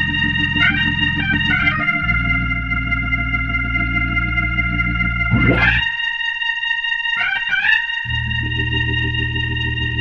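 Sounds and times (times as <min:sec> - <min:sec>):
gospel organ chord: 0:00.0 - 0:10.0.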